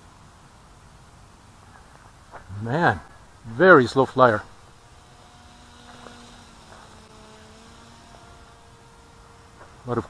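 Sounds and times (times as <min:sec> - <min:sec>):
model plane motor buzzing: 0:02.3 - 0:10.0.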